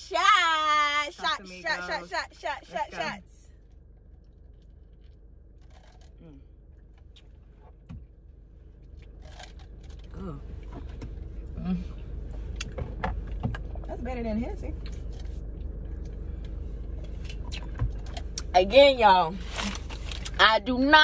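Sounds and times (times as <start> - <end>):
car cabin rumble: 0.0 - 21.0.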